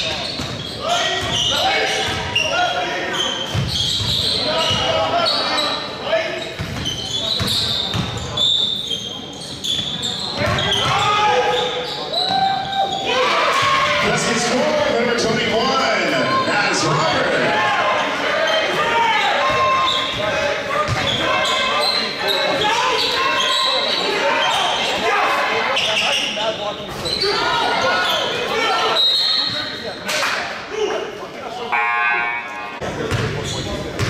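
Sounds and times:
people shouting: 12.2 - 14.2.

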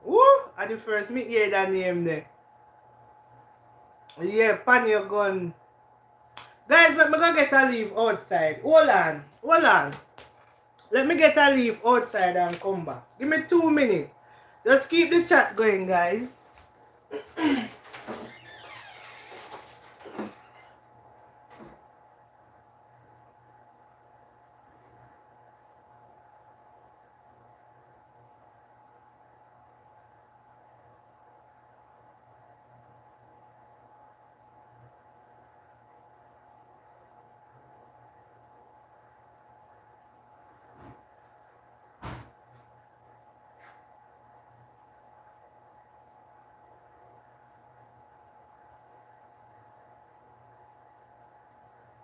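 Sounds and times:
steady low hum: 0.0 - 18.8, 19.6 - 52.0.

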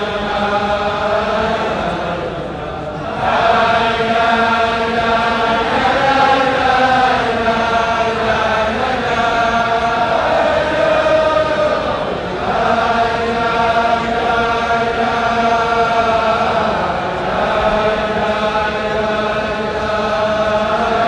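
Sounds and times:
crowd of men chanting: 0.0 - 21.0.

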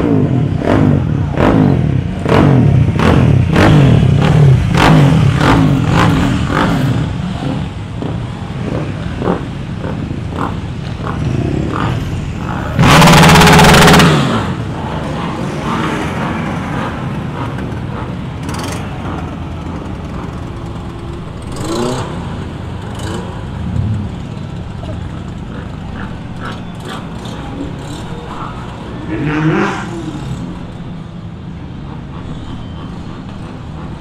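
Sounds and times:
motorcycle revving loudly: 0.0 - 16.2, 21.3 - 30.6
sports car engines rumbling: 0.0 - 34.0.

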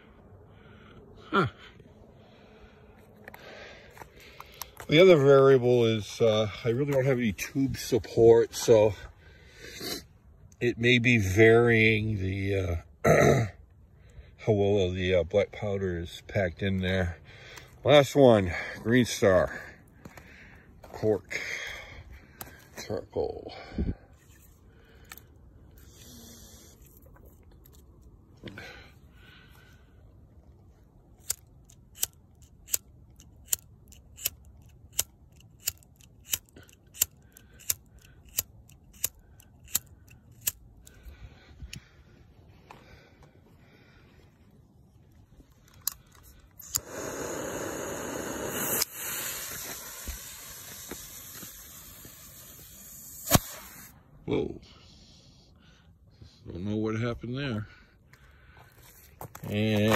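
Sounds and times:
rocket motor hissing: 25.8 - 26.8, 46.6 - 54.0
lighter clicking: 46.6 - 49.8.

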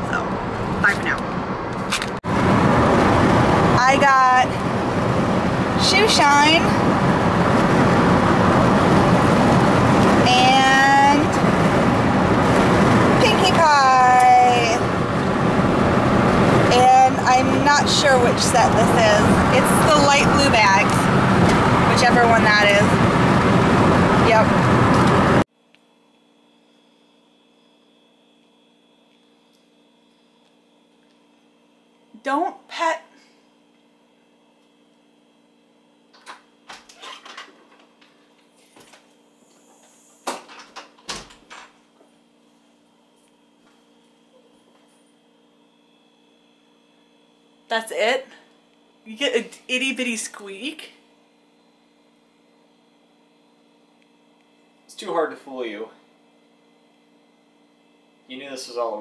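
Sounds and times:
woman speaking: 0.0 - 1.2, 3.8 - 4.6, 5.8 - 6.8, 10.2 - 11.4, 13.2 - 14.8, 16.7 - 21.1, 21.8 - 23.0, 24.2 - 24.6, 32.2 - 33.1, 47.7 - 48.4, 49.1 - 51.0
car road and engine noise: 0.0 - 25.5.

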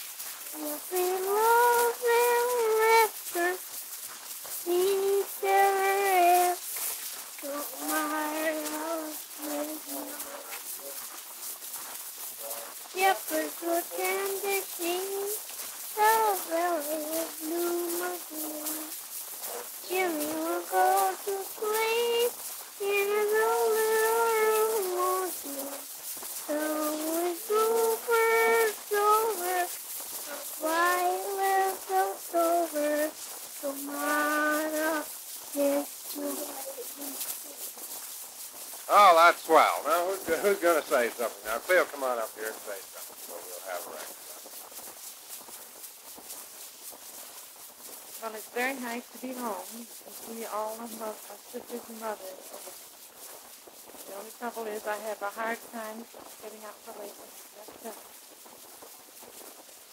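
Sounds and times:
record surface hiss: 0.0 - 59.9
high voice singing: 0.4 - 3.6, 4.6 - 6.6, 7.4 - 10.5, 13.0 - 19.0, 19.8 - 25.9, 26.5 - 37.5.

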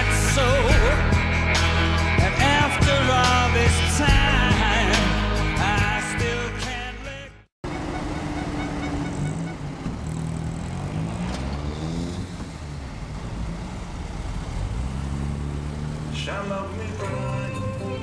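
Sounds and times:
cars driving slowly past: 7.7 - 18.0.

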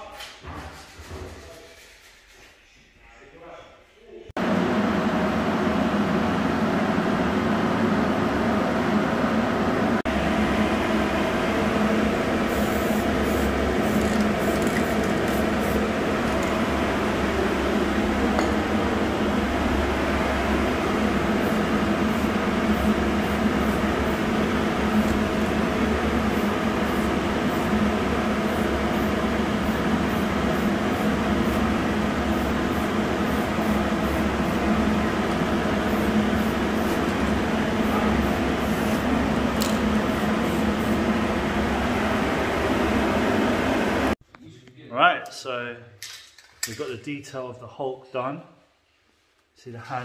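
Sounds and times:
machine droning: 4.4 - 44.2.

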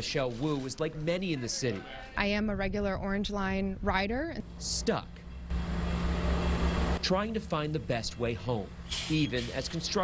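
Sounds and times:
bus engine rumbling: 4.3 - 10.0.

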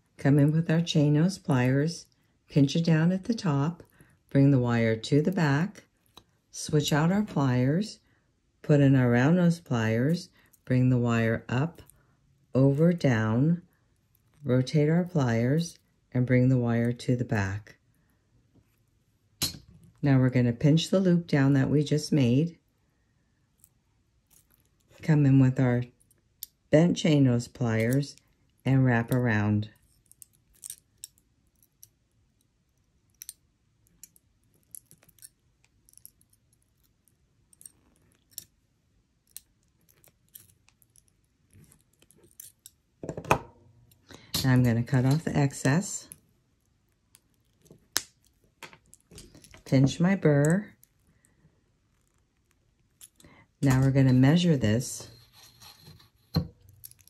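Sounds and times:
pliers clicking on wire: 30.0 - 32.0, 33.1 - 38.5, 39.2 - 42.8
faint rubbing and handling: 55.0 - 56.9.

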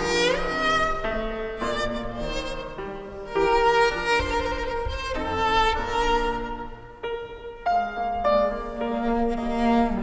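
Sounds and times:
grand piano classical passage: 0.0 - 10.0.

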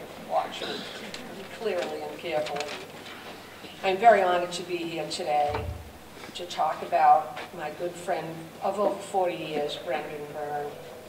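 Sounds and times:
woman speaking through microphone: 0.3 - 2.8, 3.8 - 5.8, 6.4 - 10.8
low thump: 5.5 - 6.0.

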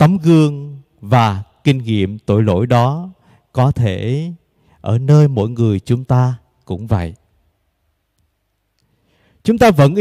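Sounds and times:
man speaking: 0.0 - 7.2, 9.4 - 10.0.

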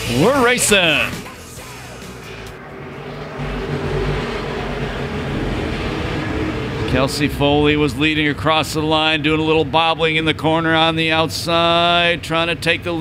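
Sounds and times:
race car engines at full throttle: 0.0 - 13.0.

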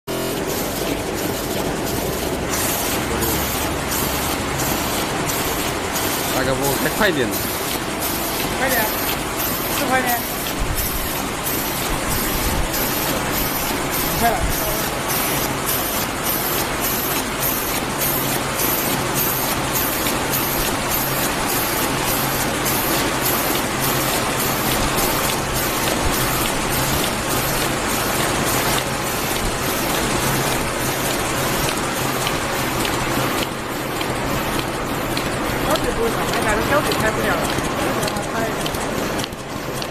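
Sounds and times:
machine mechanical clatter: 0.1 - 39.9.

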